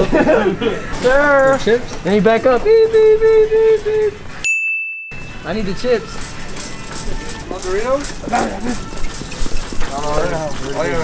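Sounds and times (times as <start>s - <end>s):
man laughing: 0.0s - 1.0s
shopping carts rolling: 0.9s - 4.2s, 5.4s - 11.0s.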